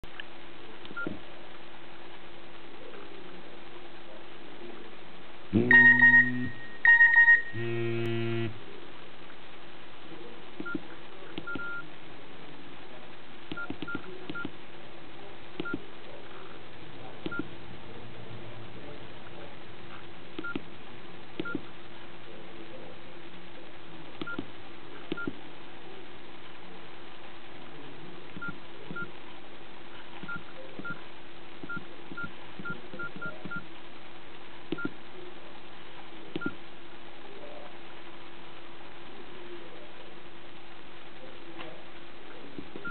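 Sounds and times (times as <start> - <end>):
low buzzy phone tone: 5.5 - 8.6
short keypad beeps: 5.6 - 8.5, 11.4 - 11.8, 21.4 - 21.6.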